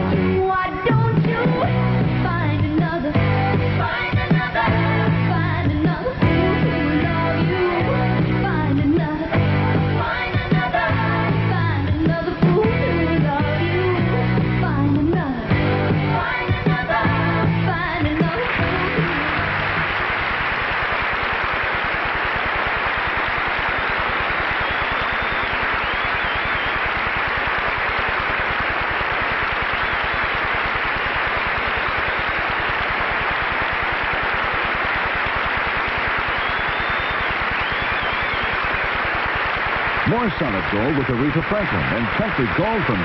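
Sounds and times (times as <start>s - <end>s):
audience applauding: 18.0s - 43.0s
faint whistles: 24.6s - 26.9s, 36.3s - 38.8s.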